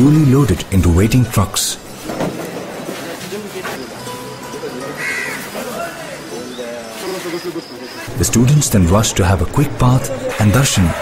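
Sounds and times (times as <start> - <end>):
men's voices: 4.6 - 11.0.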